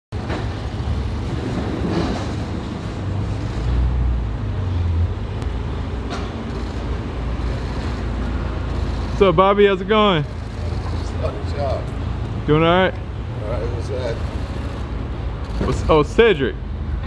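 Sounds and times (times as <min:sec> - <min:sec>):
road traffic rumble: 0:00.1 - 0:17.0.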